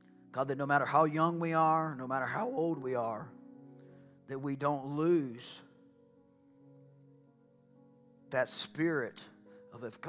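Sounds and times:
soft sustained chord music: 0.0s - 10.0s.

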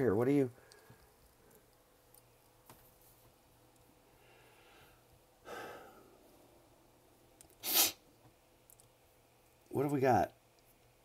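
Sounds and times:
man's sharp burst of breath: 7.6s - 8.0s.

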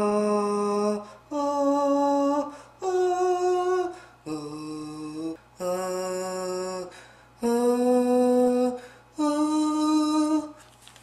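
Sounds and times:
person humming long notes: 0.0s - 10.5s.

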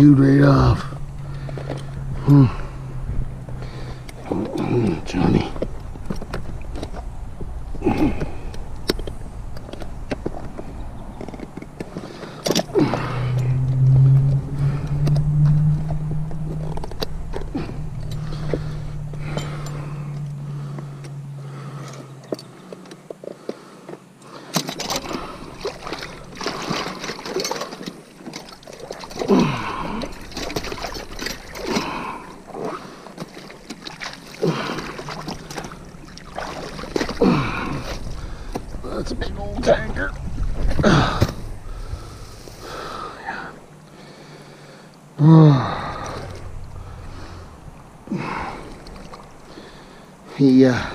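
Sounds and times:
water splashing and sloshing: 0.0s - 45.0s, 45.6s - 50.9s
steady low hum: 0.0s - 50.9s.

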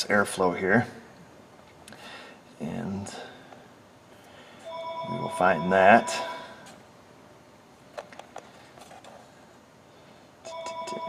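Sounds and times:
electronic ringing tone: 4.6s - 6.6s, 10.5s - 11.0s.

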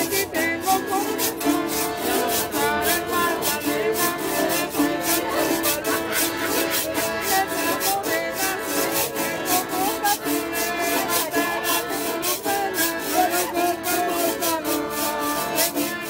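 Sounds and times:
accordion melody: 0.0s - 16.0s
metal scraper scraped rhythmically: 0.0s - 16.0s
strummed acoustic guitar: 0.0s - 16.0s.

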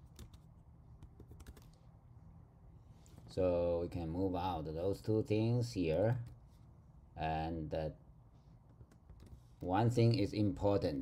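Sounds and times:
typing on computer keyboard: 0.0s - 1.8s.

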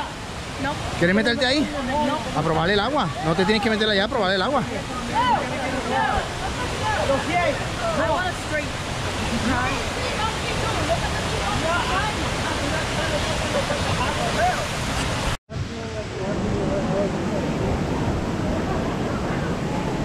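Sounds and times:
creek rushing over stones: 0.0s - 20.0s
faint people chattering: 15.6s - 20.0s.

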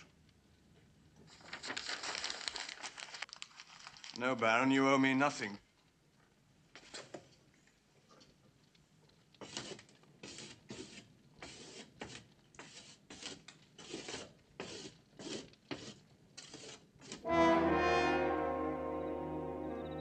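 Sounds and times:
stick scratching on a wall: 9.4s - 17.2s
orchestral chord with brass: 17.2s - 20.0s.

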